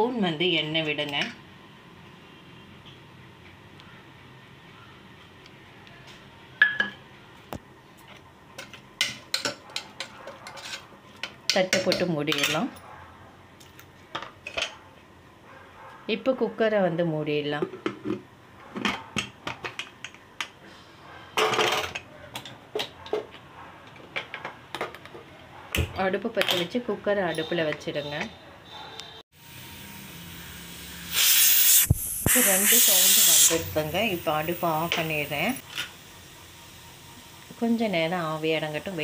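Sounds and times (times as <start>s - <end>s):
utensils clinking on metal pot: 8.6s - 12.8s
pressure cooker hissing steam: 29.4s - 39.0s.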